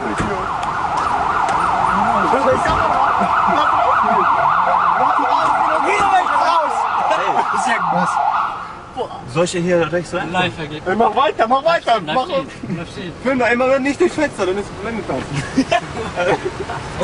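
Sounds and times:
police siren yelping: 0:00.0 - 0:08.8.

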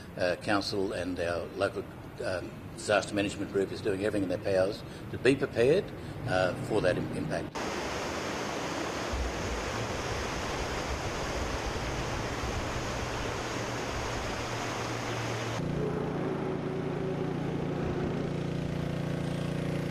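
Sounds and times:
low mechanical hum: 0:04.7 - 0:19.9
floodwater rushing in a river: 0:07.5 - 0:15.6.

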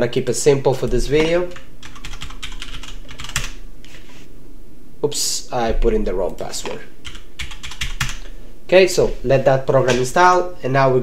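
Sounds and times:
faint steady hum: 0:00.0 - 0:11.0
computer keyboard keystrokes: 0:01.2 - 0:03.6, 0:07.0 - 0:08.2.

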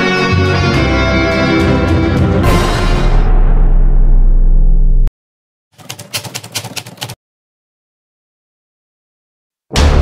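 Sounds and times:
keystroke clicks: 0:05.8 - 0:07.2.

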